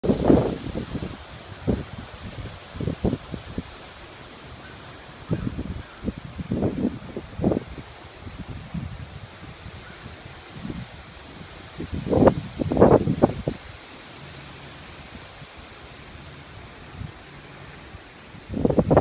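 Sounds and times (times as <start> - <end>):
wind gusting against microphone: 0.0 - 19.0
wind rushing through trees: 0.0 - 19.0.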